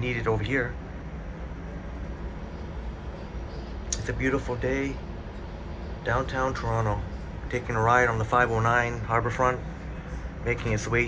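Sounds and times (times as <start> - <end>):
streetcar rumbling and humming: 0.0 - 11.0.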